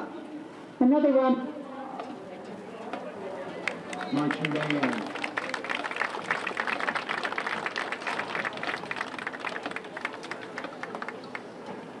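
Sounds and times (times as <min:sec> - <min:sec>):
audience applauding: 0:03.6 - 0:11.5.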